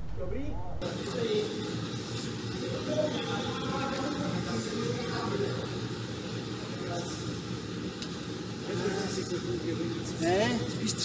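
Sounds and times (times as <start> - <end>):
blower fans humming: 0.0 - 11.0.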